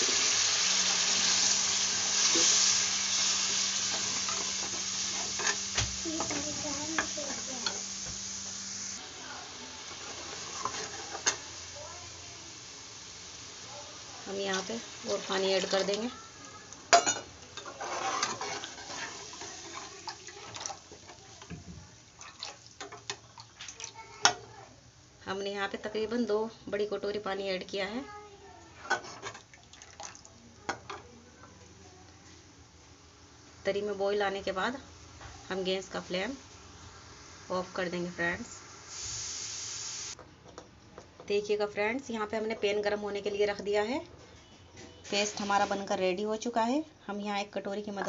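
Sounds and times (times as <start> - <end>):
gravy hissing on gas burner: 0.0 - 22.2, 31.5 - 40.2, 45.0 - 46.1
ladle clinking and scraping pan: 3.9 - 6.4, 16.9 - 20.8.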